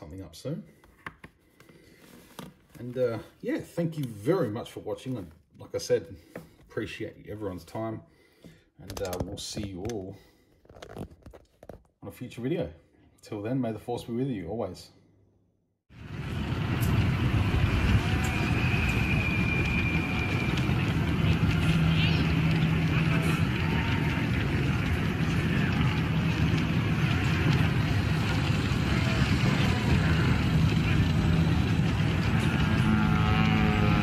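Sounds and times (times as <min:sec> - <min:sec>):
vehicle rumble and low hum: 0:16.0 - 0:34.0
electronic whistles and beeps: 0:18.2 - 0:22.4
murmuring chatter: 0:21.1 - 0:32.8.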